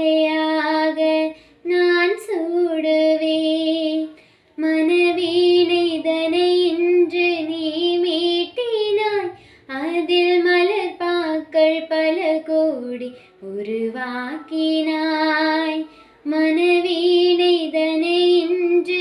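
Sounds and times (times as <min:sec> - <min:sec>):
woman singing unaccompanied: 0:00.0 - 0:19.0.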